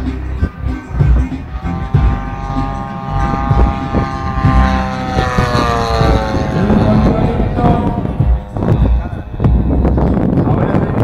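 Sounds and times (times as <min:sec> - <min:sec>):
low rumbling thumps: 0:00.0 - 0:11.0
model plane engine droning: 0:00.0 - 0:11.0.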